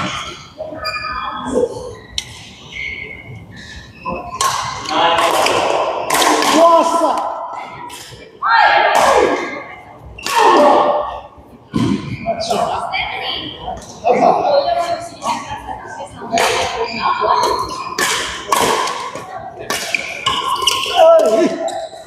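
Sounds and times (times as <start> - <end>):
people talking and calling: 0.0 - 22.0
racket hitting shuttlecock: 4.4 - 6.6, 17.5 - 21.4.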